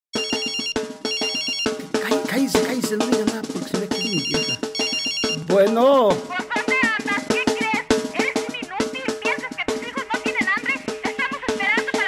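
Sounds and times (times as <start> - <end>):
telephone ringtone trilling: 0.1 - 2.0, 3.8 - 6.1.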